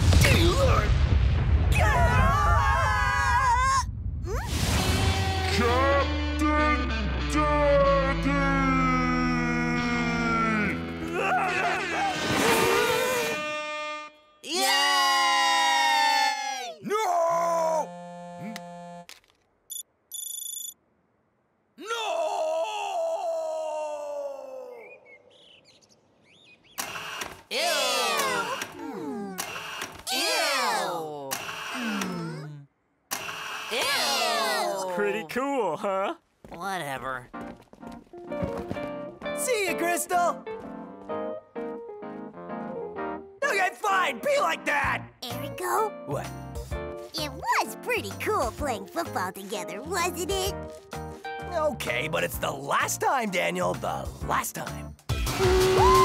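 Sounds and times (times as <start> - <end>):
wordless cries and groans: 1.7 - 13.4, 21.8 - 25.0, 27.5 - 29.5, 30.1 - 32.8, 33.7 - 36.2.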